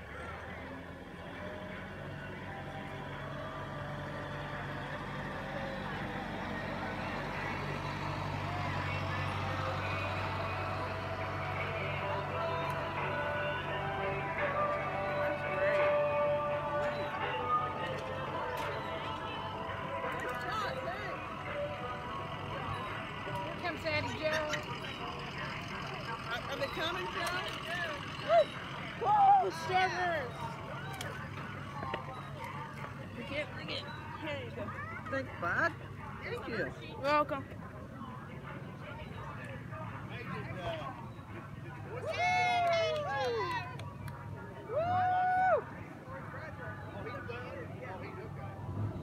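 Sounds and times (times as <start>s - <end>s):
faint voices of onlookers: 0.0s - 49.0s
vehicle engine running low: 0.0s - 49.0s.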